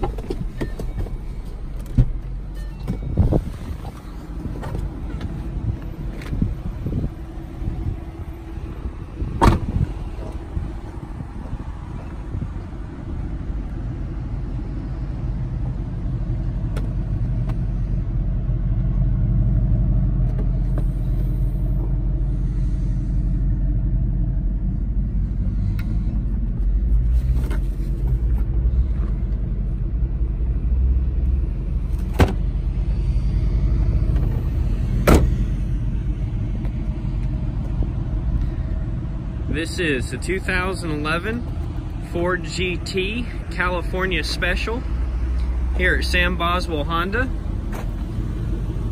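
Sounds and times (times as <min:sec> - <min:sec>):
car engine idling: 0:00.0 - 0:48.9.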